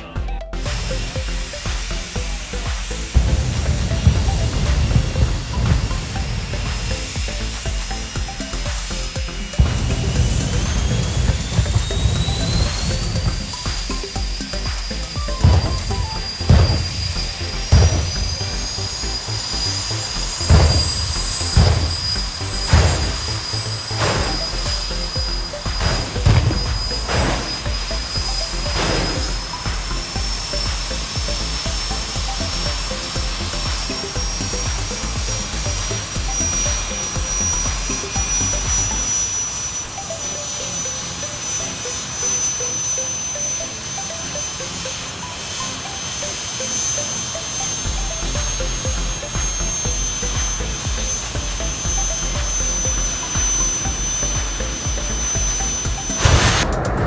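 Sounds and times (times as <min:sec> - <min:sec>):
jet turbine engines whining: 0:00.0 - 0:57.0.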